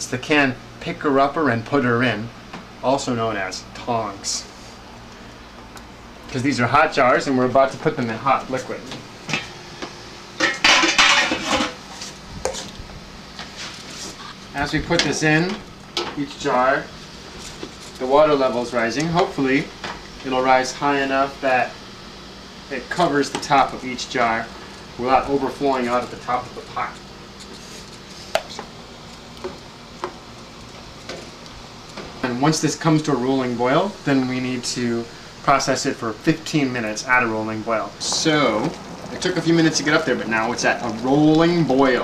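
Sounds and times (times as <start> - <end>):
metal clanking against pot: 10.4 - 11.8.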